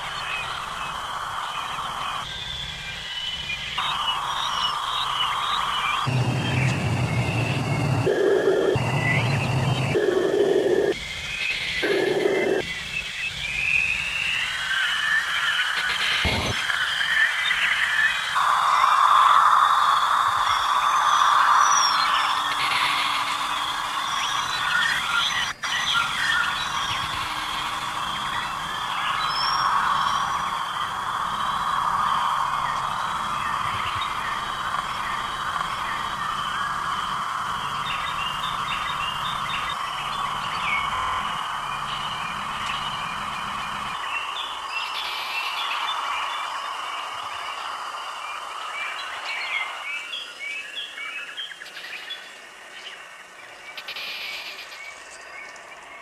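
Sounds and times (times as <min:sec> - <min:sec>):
noisy electronic drone: 0:00.0 - 0:50.2
bird-like chirps: 0:00.0 - 0:56.0
low rumble: 0:06.0 - 0:10.9.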